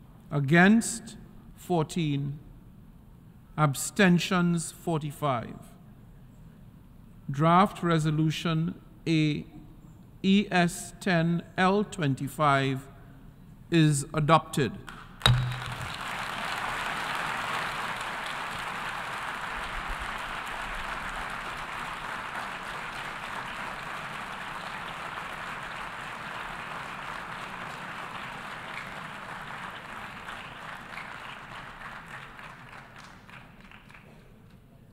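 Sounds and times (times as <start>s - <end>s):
large crowd applauding: 15.2s - 34.2s.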